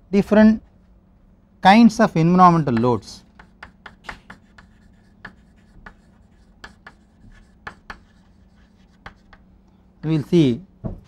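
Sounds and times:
chalk tapping and scratching: 2.6 - 9.5.

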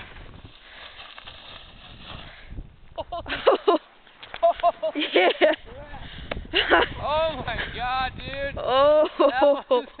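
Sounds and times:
rushing noise on microphone: 0.0 - 2.8.

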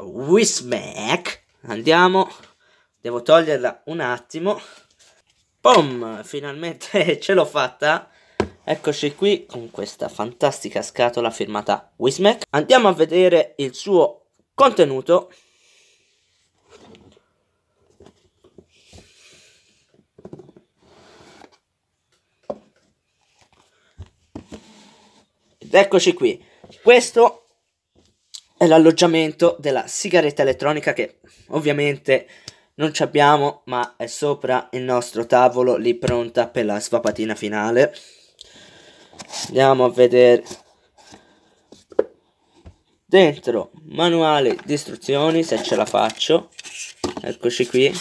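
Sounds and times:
cardboard sliding against cardboard: 20.4 - 21.6, 24.3 - 25.4, 39.1 - 39.6.

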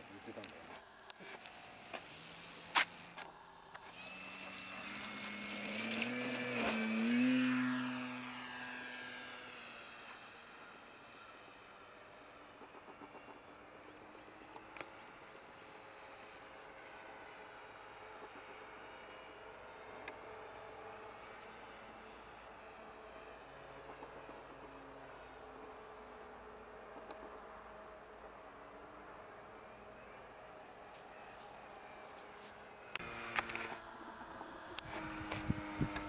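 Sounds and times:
model airplane motor and propeller: 0.0 - 36.0.

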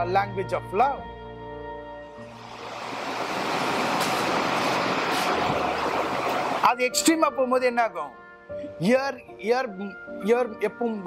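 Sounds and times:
soft sustained keyboard music: 0.0 - 3.7, 4.3 - 11.0.

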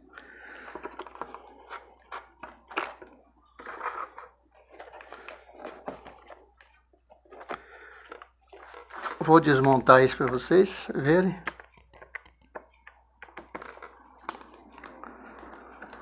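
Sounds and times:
plastic parts handled on table: 0.6 - 10.5.

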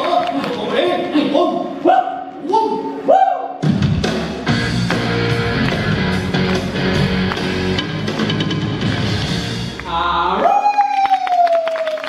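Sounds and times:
audience clapping: 0.0 - 1.2, 4.7 - 12.0.

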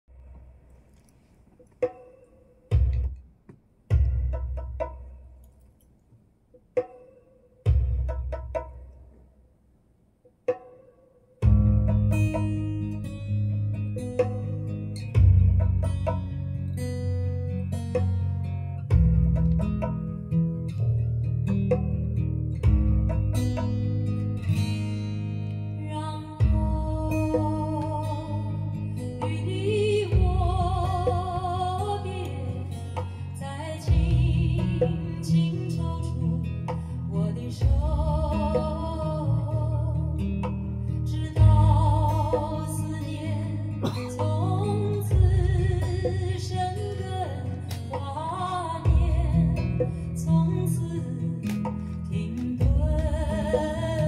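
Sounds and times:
ballad through loudspeakers: 11.4 - 54.0
plucked string notes: 11.4 - 54.0.

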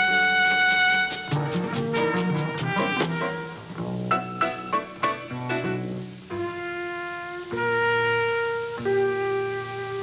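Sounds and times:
jazz trumpet long notes: 0.0 - 10.0.

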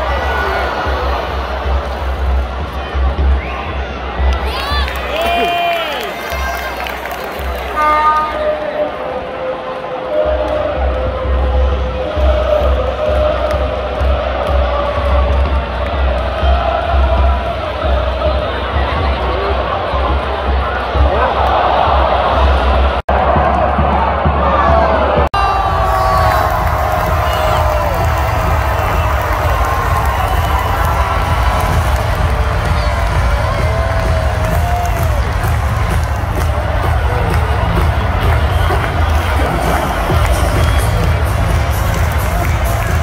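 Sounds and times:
stadium crowd cheering and clapping: 0.0 - 43.0.

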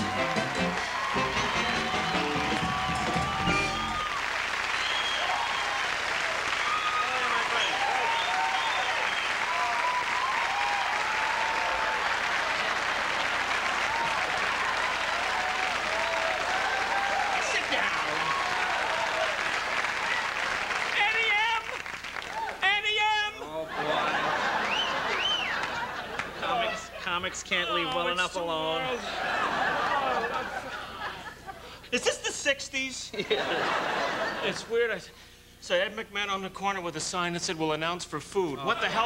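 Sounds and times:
audience applauding: 0.0 - 22.8, 23.8 - 26.8
cheers and shouts: 0.0 - 23.3.

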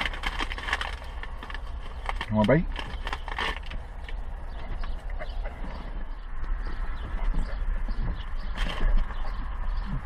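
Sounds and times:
paper wrapper crinkling: 0.0 - 3.9.

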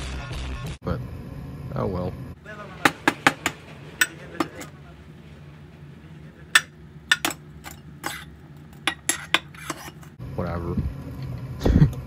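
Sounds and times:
low steady hum: 0.8 - 12.0
glassware clinking: 6.5 - 8.2.

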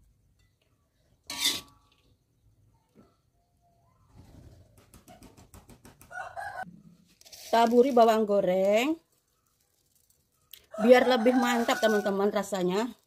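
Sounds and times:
metal spoon scraping ceramic plate: 1.3 - 1.9.

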